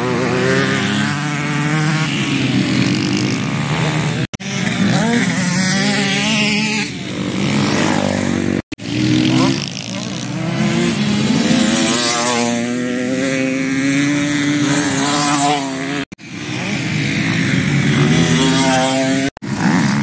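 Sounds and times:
motocross engines revving: 0.0s - 20.0s.

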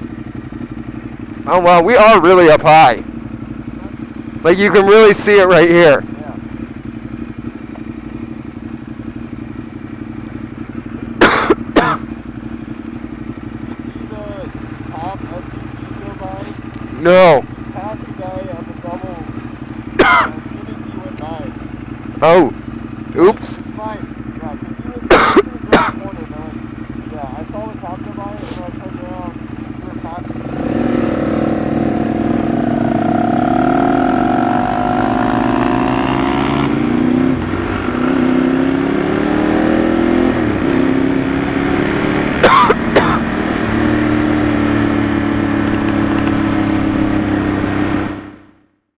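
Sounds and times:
motorcycle engine revving: 0.0s - 48.8s.

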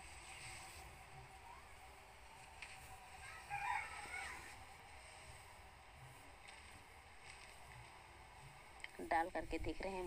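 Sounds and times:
rooster crowing: 3.2s - 4.6s.

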